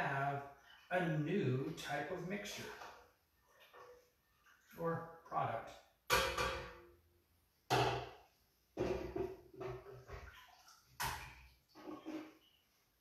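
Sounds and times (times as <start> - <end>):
pitcher scooping liquid from pot: 9.2 - 12.6.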